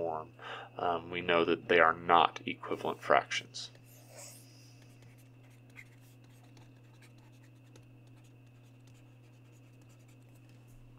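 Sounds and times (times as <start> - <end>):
low electrical hum: 0.0 - 10.9
pen strokes on writing tablet: 5.0 - 10.4.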